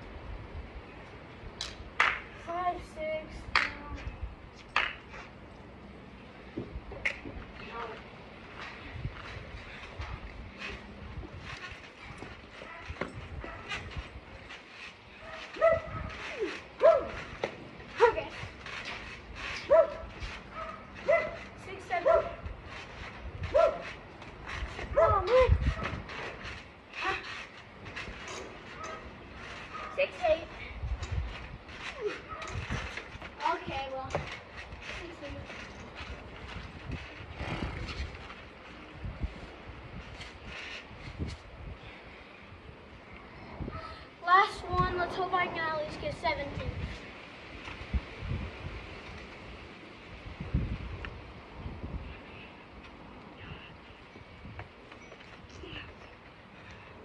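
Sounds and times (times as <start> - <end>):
dog barking: 16.8 - 17.1, 22.0 - 22.3.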